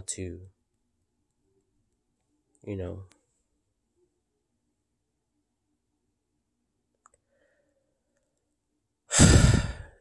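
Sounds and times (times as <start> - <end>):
man sighing heavily: 9.1 - 10.0.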